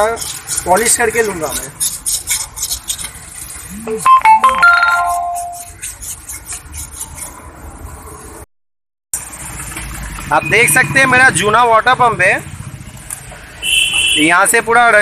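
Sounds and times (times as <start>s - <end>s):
scraping strokes on metal: 0.0s - 3.7s, 4.7s - 7.6s
electronic phone chime: 4.1s - 5.2s.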